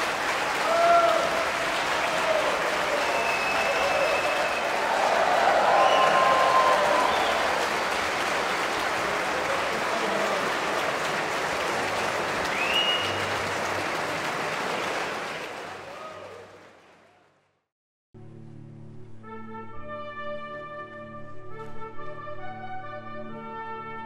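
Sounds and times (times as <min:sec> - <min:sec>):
audience applauding: 0:00.0 - 0:17.4.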